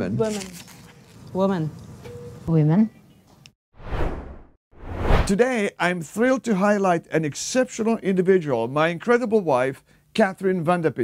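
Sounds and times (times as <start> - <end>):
whoosh: 3.8 - 5.3.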